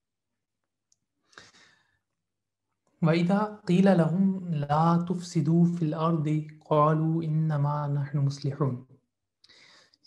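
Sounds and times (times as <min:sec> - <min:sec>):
short breath close to microphone: 0:01.2 - 0:02.0, 0:09.4 - 0:10.0.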